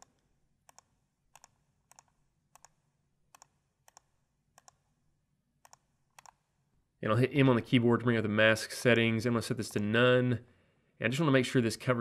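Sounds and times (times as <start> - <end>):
computer mouse clicking: 0.0 - 4.8, 5.6 - 6.4.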